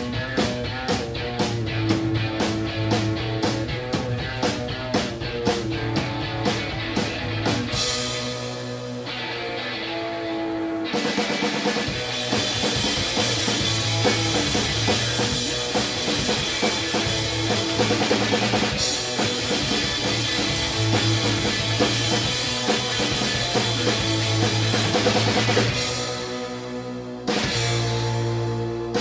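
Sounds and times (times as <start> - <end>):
drum kit playing hard: 0.0 - 29.0
electric guitars: 0.0 - 29.0.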